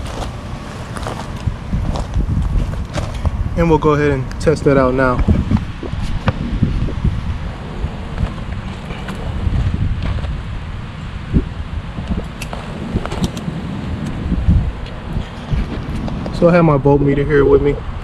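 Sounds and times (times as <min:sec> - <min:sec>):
wind rumbling on microphone: 0:00.0 - 0:18.0
microphone handling knocks: 0:05.1 - 0:07.2.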